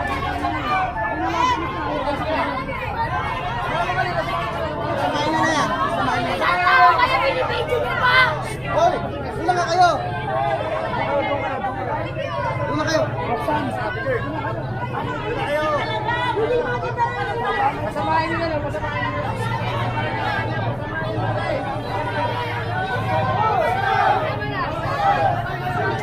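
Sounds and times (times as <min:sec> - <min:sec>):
crowd chatter: 0:00.0 - 0:26.0
louder voices: 0:00.0 - 0:26.0.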